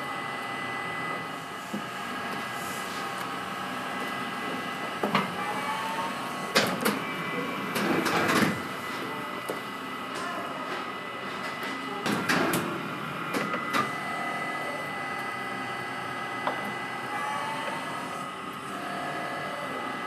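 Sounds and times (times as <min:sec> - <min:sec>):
oven spit mechanical hum: 0:00.0 - 0:20.0.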